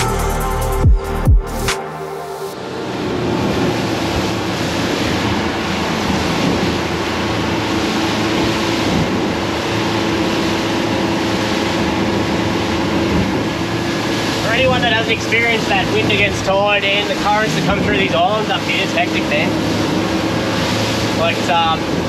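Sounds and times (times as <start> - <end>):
boat engine drone: 0.0 - 22.0
wind and water rushing: 1.4 - 22.0.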